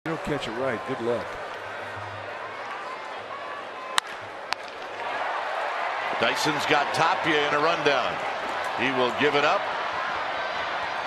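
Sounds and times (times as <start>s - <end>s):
stadium crowd murmur: 0.1s - 11.0s
wooden bat hitting baseball: 3.9s - 5.0s.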